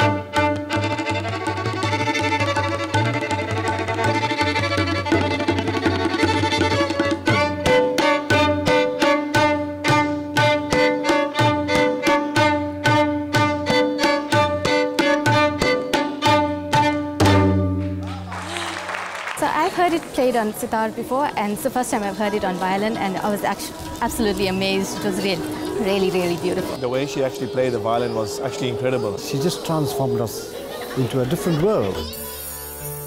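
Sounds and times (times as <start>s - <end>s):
violin playing: 0.0s - 17.9s
hand drum: 0.0s - 18.3s.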